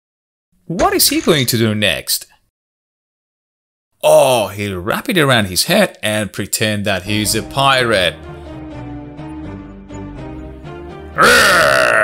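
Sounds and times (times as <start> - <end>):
light background music: 6.9 - 11.8.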